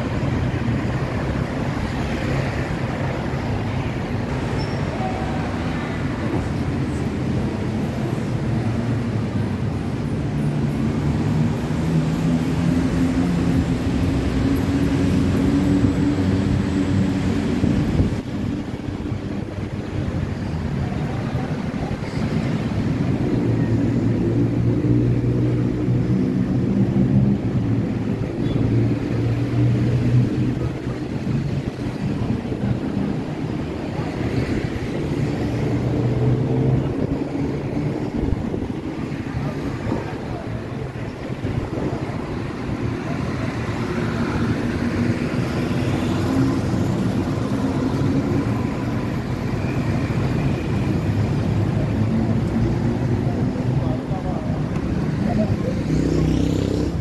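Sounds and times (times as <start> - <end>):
traffic noise: 0.0 - 57.0
vehicle engines humming: 0.0 - 57.0
passers-by talking: 11.5 - 57.0.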